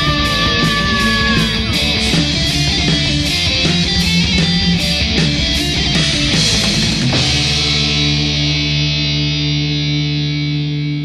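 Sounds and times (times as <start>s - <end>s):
distorted guitars holding a chord: 0.0s - 11.0s
heavy metal band: 0.0s - 11.0s.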